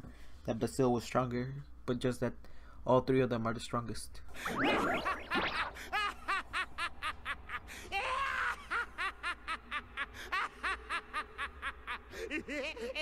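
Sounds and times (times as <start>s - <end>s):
cartoon voice giggling: 4.4s - 6.6s.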